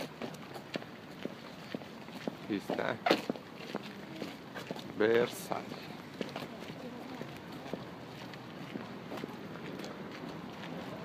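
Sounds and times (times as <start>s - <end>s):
footsteps on paved path: 0.0s - 11.0s.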